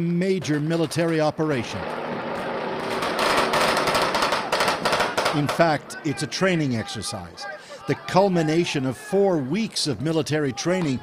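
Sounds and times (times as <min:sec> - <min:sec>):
rapid gunfire: 0:01.9 - 0:05.7.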